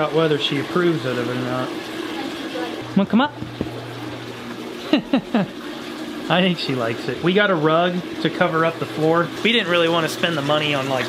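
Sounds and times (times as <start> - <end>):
water fountain running: 0.0 - 11.0
person laughing: 4.8 - 5.6.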